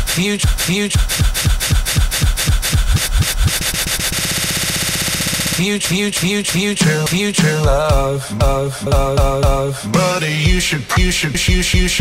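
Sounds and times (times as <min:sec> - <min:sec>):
looped hip-hop beat stuttering: 0:00.0 - 0:12.0.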